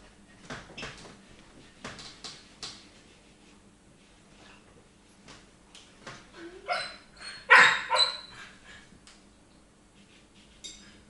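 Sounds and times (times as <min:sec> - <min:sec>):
dog barking: 0:06.7 - 0:08.3.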